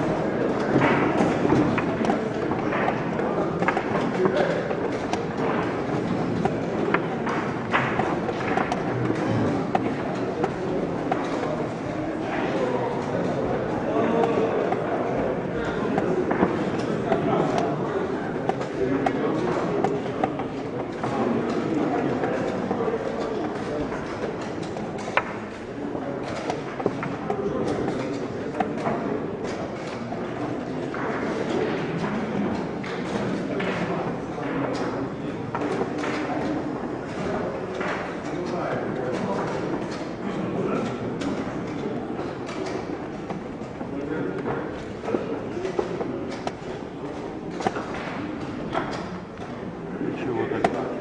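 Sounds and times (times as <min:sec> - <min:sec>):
background murmur: 0:00.0 - 0:51.0
chess pieces knocking on board: 0:00.4 - 0:30.0, 0:41.2 - 0:49.2, 0:50.6 - 0:51.0.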